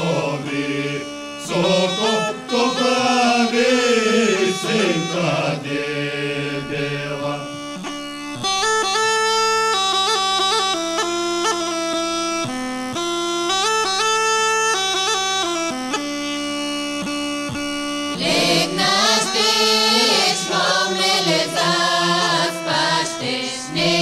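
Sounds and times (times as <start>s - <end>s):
bagpipe melody over drone: 0.0s - 24.0s.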